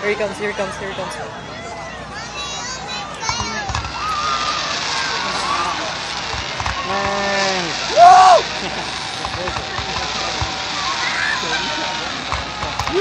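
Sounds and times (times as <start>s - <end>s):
fireworks crackling: 2.0s - 13.0s
people shouting and whooping: 3.9s - 6.0s, 6.8s - 9.2s, 12.7s - 13.0s
man whooping: 7.1s - 8.5s.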